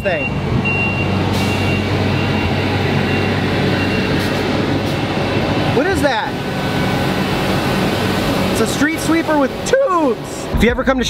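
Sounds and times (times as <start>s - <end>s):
street sweeper engine drone: 0.0s - 10.6s.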